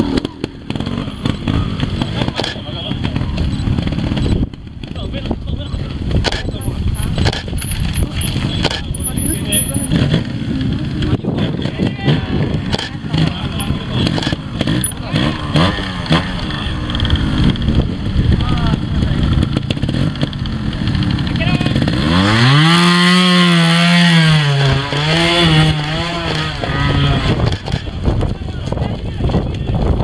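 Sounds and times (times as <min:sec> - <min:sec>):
motorcycle engine blipping and revving: 0:00.0 - 0:30.0.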